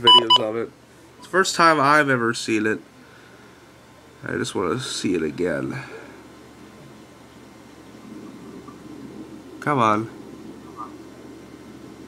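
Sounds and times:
faint low hum: 0.0s - 12.0s
room noise hiss: 0.0s - 12.0s.

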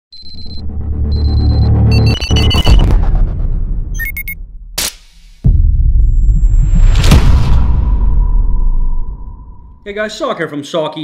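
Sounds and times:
rapid high electronic beeping: 0.1s - 3.0s, 3.9s - 4.4s
low rumble: 0.8s - 9.9s.

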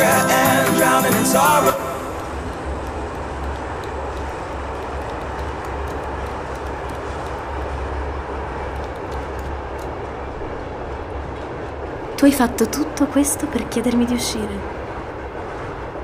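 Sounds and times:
moving train rumble and hiss: 0.0s - 16.0s.

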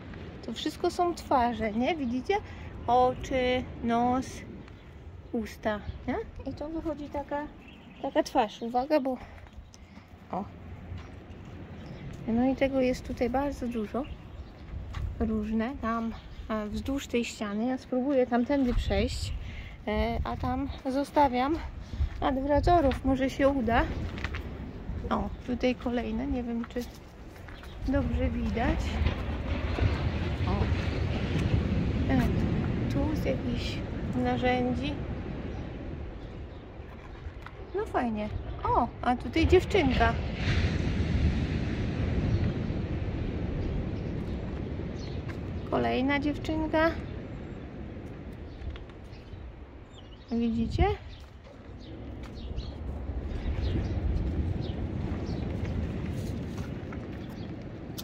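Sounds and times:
low rumble: 17.9s - 58.0s.

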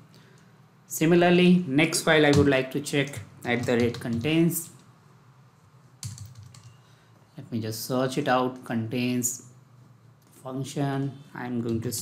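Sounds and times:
keyboard keystrokes: 6.0s - 6.8s.

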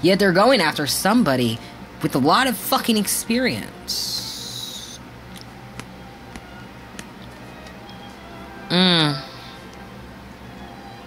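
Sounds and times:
high sharp hiss: 3.9s - 5.0s.

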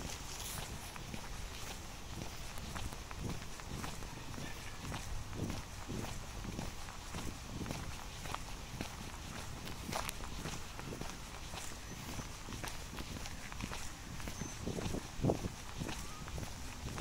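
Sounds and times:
footsteps on fine gravel: 0.0s - 17.0s.

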